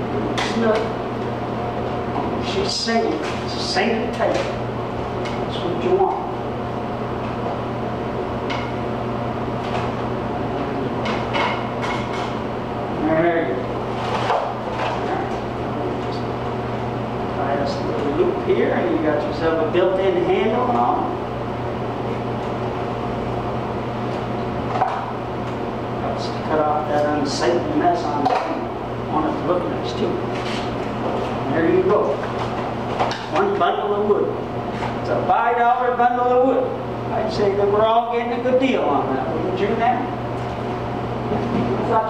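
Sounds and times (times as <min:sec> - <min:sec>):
steady low hum: 0:00.0 - 0:42.0
man speaking: 0:02.4 - 0:04.6, 0:05.4 - 0:06.4, 0:17.3 - 0:21.2, 0:26.0 - 0:30.3, 0:31.4 - 0:32.2, 0:33.3 - 0:34.4, 0:41.7 - 0:42.0.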